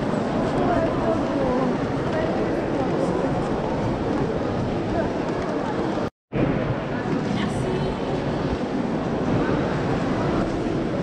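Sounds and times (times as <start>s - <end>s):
murmur of large crowd: 0.0s - 11.0s.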